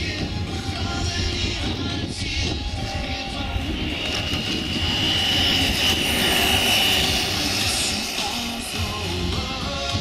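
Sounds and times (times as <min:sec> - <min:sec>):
low rumble: 0:00.0 - 0:09.8
electric motor propeller whine: 0:00.0 - 0:10.0.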